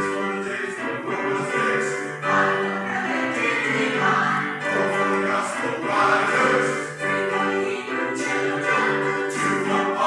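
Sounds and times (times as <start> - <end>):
mixed choir singing held chords: 0.0 - 10.0.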